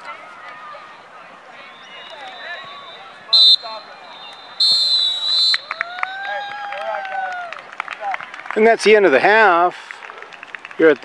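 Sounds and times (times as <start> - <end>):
background chatter: 0.0 - 10.7
referee's whistle blasts: 1.7 - 5.8.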